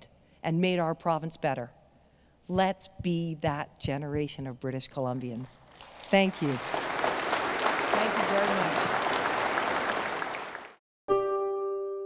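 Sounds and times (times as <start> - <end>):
audience applauding: 5.7 - 10.8.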